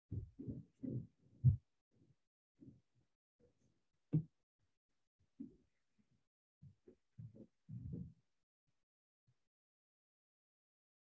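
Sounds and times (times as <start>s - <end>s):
soft low thumps: 0.1s - 1.6s.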